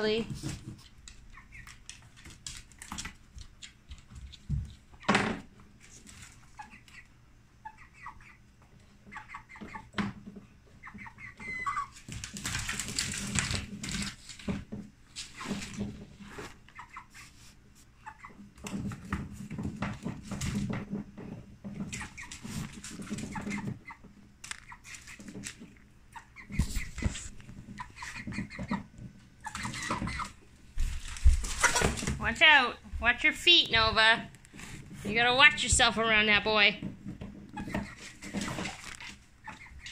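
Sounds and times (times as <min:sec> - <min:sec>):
hen clucking softly: 0:06.4 - 0:08.4, 0:09.0 - 0:09.9, 0:10.8 - 0:11.9, 0:16.7 - 0:17.4, 0:18.0 - 0:18.5, 0:26.1 - 0:30.4, 0:39.4 - 0:39.9.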